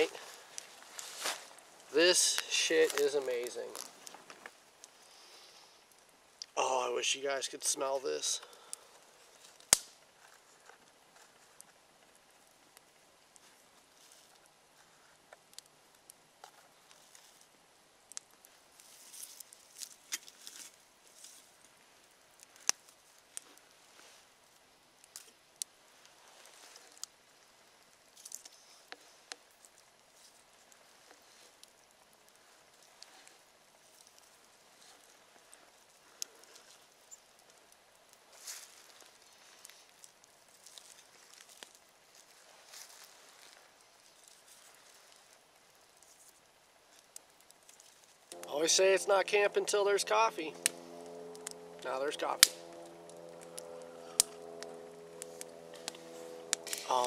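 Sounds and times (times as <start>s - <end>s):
campfire crackling: 0.0s - 57.0s
sticks rustling in fire: 0.0s - 57.0s.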